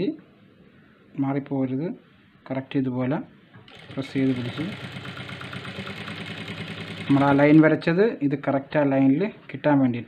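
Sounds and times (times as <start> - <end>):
sewing machine stitching: 3.7 - 7.7.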